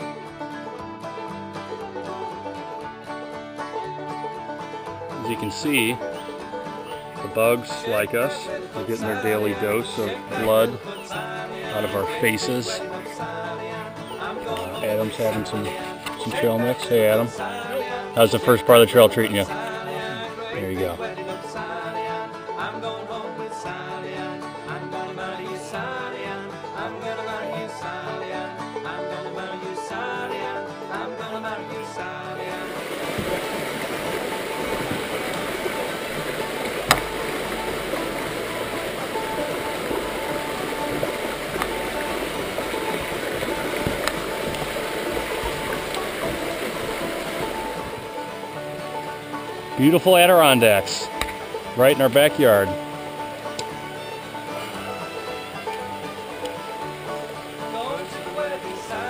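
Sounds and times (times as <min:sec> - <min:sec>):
background music: 0:00.0 - 0:59.0
rocky brook rushing: 0:01.5 - 0:22.9, 0:32.3 - 0:59.0.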